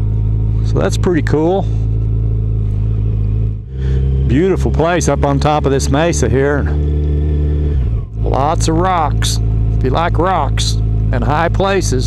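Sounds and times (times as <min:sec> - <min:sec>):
motorcycle engine running: 0:00.0 - 0:12.0.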